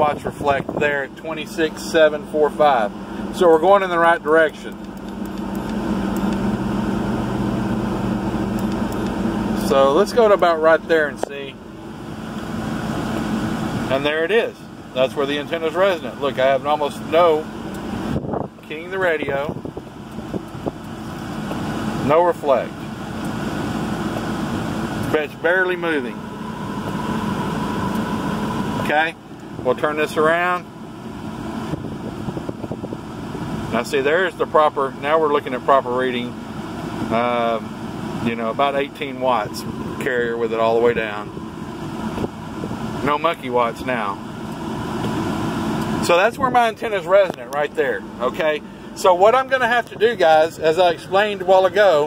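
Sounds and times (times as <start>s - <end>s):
lower hum tone: 0.0s - 22.0s, 22.7s - 33.8s
vehicle cabin hum and rushing: 0.0s - 52.0s.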